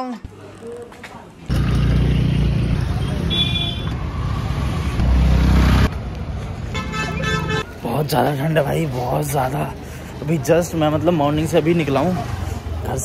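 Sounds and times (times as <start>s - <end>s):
road traffic rumble: 0.2s - 13.0s
vehicle horn toots: 3.0s - 4.0s.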